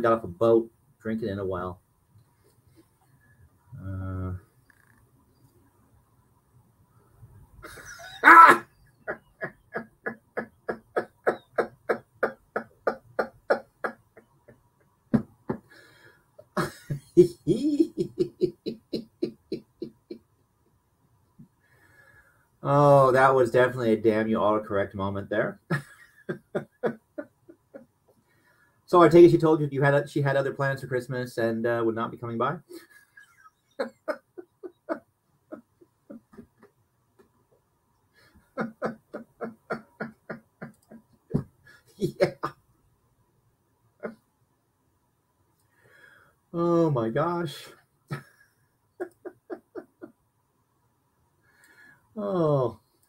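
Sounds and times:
man laughing hard: 7.6 - 14.3, 16.4 - 20.2, 25.7 - 27.9, 32.7 - 36.7, 38.4 - 42.5, 49.0 - 50.1
man chuckling quietly: 7.6 - 14.6, 16.4 - 20.2, 25.8 - 27.9, 32.7 - 36.8, 38.4 - 42.5, 49.0 - 50.2.

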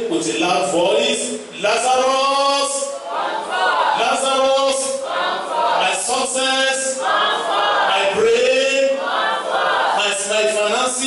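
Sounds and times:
voices singing worship chorus: 0.0 - 11.0.

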